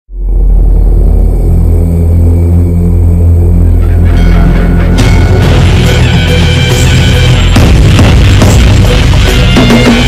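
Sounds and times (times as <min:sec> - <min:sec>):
deep rumbling drone: 0:00.1 - 0:10.0.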